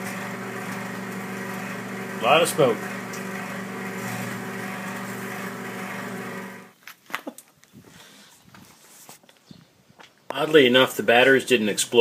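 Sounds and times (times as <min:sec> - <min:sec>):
microwave oven humming: 0:00.0 - 0:06.7.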